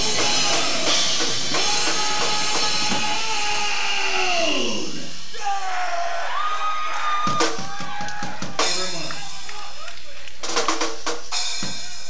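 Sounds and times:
drum hits: 0.0s - 3.8s, 7.2s - 9.6s.

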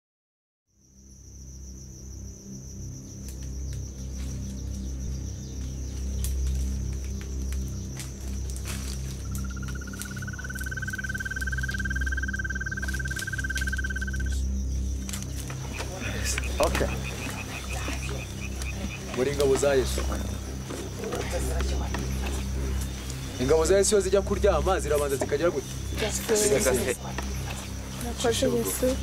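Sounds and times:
high insect trill: 0.7s - 29.0s
lower insect trill: 0.7s - 29.0s
low music: 2.3s - 29.0s.

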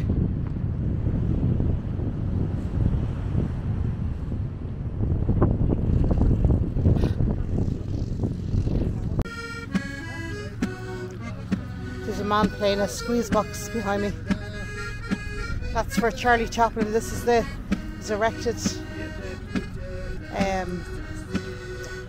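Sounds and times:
wind buffeting microphone: 0.0s - 22.0s
squeeze box playing tune: 9.3s - 22.0s.

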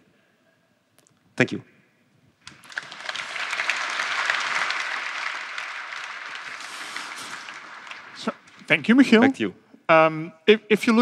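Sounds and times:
audience applauding: 2.4s - 8.8s.

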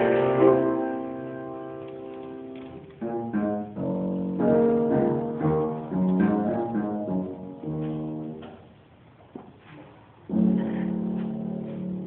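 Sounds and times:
grand piano chord: 0.0s - 8.4s, 10.3s - 12.0s.

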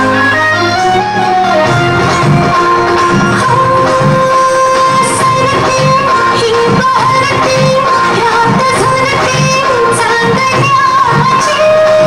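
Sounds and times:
loud dance music: 0.0s - 12.0s.

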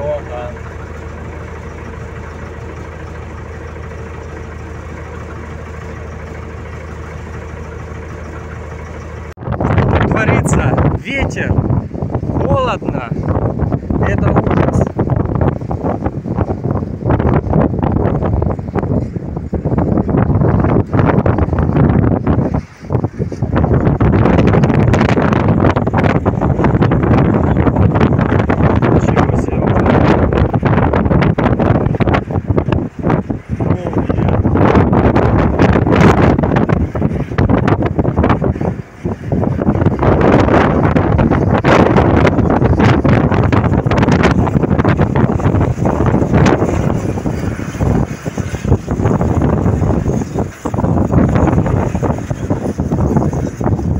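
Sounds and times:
wind buffeting microphone: 0.0s - 53.9s.

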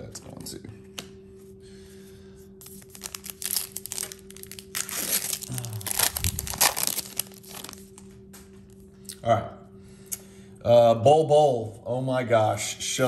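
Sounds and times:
plastic wrapper tearing and crinkling: 2.6s - 8.0s.

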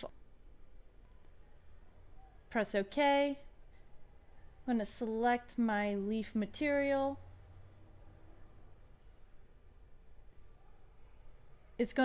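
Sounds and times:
low steady hum: 0.0s - 12.0s
faint clicks: 0.7s - 1.4s.

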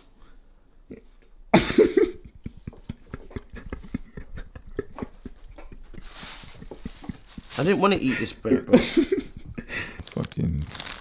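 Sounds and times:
bread crust crackling: 6.0s - 8.1s, 10.0s - 11.0s.

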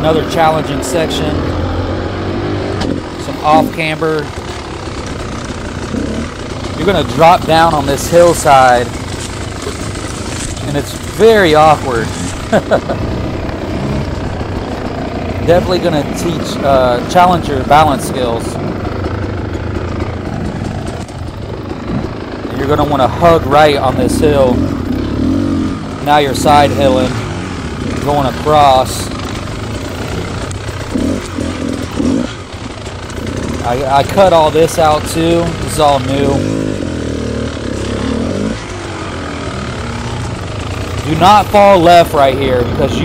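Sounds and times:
dirt bike engine running: 0.0s - 43.0s.

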